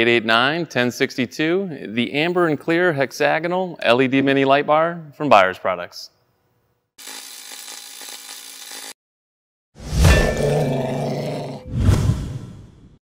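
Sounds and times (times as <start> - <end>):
low growling roar: 10.3 - 12.3.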